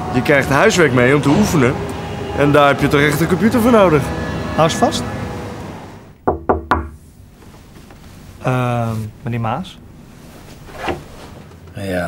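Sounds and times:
knocks on a door: 6.2s - 7.0s.

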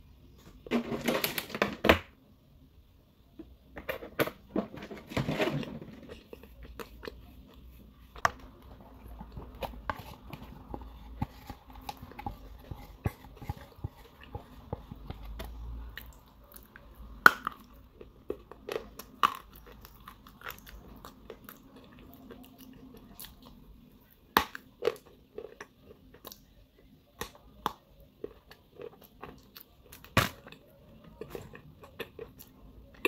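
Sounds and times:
chewing crunchy clay: 6.0s - 33.0s.

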